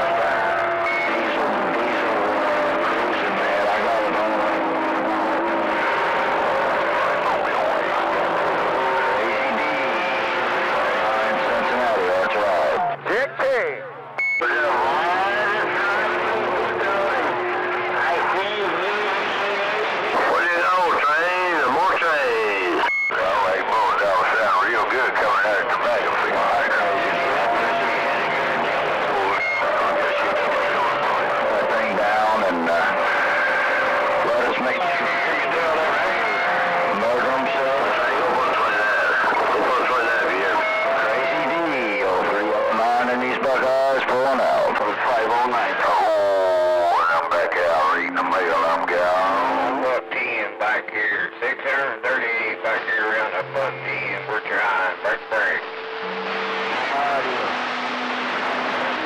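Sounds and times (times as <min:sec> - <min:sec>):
garbled radio voices: 0:00.0 - 0:59.0
whistling radio tones: 0:00.0 - 0:59.0.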